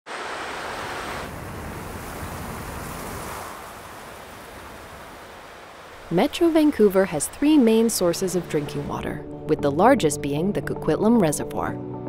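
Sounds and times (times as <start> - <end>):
stream running over rocks: 0.1 - 9.1.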